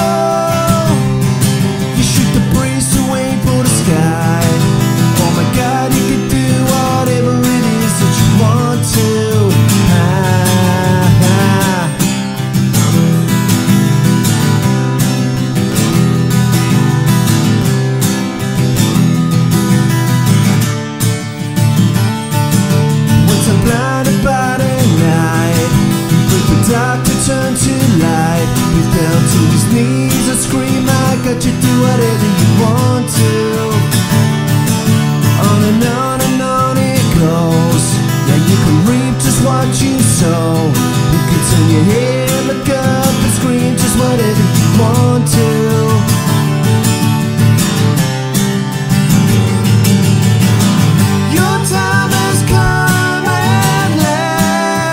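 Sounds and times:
man singing into microphone: 0.0 - 12.2, 23.2 - 34.2, 35.3 - 46.4, 51.2 - 54.9
acoustic guitars playing: 0.0 - 54.9.

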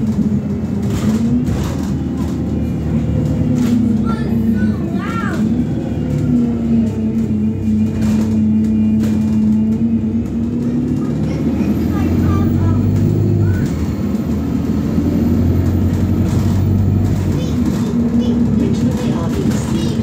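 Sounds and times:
bus engine drone: 0.0 - 20.0.

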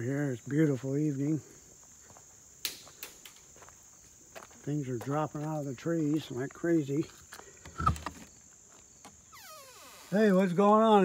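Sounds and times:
crickets chirping: 0.0 - 11.0
footsteps crunching: 1.4 - 9.2.

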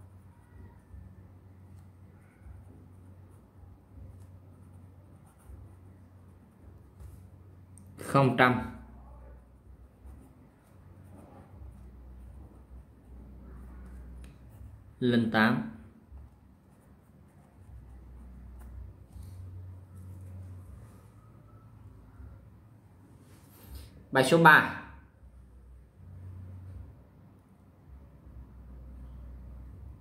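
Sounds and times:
pen scratching on paper: 1.7 - 7.5, 9.8 - 15.0, 16.0 - 21.2
low hum: 8.9 - 15.1, 15.8 - 24.1, 25.1 - 30.0.

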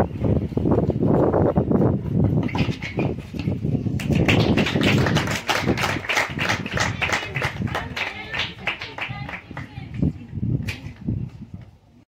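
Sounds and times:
wind buffeting microphone: 0.0 - 12.0
spectators applauding: 4.0 - 9.8
voices: 4.7 - 11.7.

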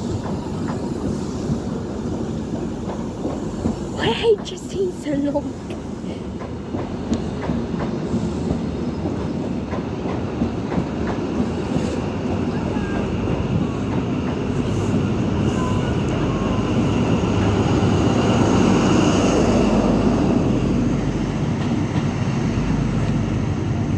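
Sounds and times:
train wheels clicking over rail joints: 0.0 - 12.4, 13.2 - 15.2.

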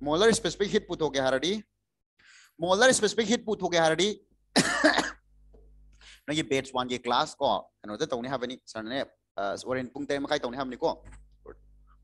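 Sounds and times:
man coughing: 4.6 - 5.2.

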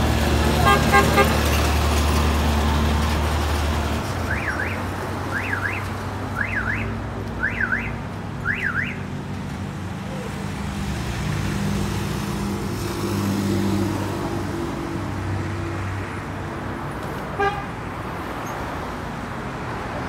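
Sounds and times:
car horn toots: 0.6 - 1.4, 17.4 - 17.7
electronic car alarm chirps: 4.3 - 5.8, 6.4 - 9.0.

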